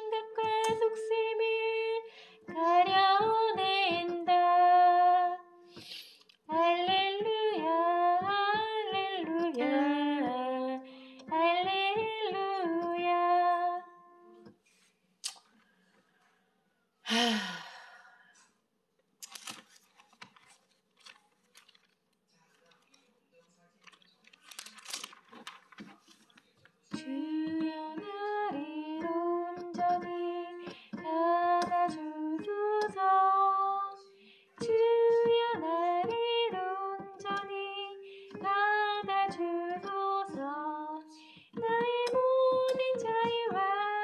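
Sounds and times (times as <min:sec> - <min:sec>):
person singing a hymn: 0:00.0 - 0:05.9, 0:06.5 - 0:14.1, 0:26.9 - 0:44.0
breath: 0:02.1 - 0:02.5, 0:05.6 - 0:06.3, 0:10.8 - 0:11.2, 0:17.1 - 0:18.6, 0:30.6 - 0:31.0, 0:34.2 - 0:34.6, 0:38.0 - 0:38.3, 0:41.2 - 0:41.6
person sighing: 0:17.0 - 0:18.4.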